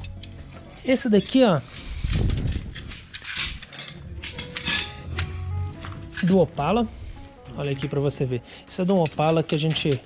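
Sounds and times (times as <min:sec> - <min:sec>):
metal trim strips clinking: 0:00.0 - 0:06.7, 0:08.7 - 0:10.0
short metallic rings: 0:03.3 - 0:05.0.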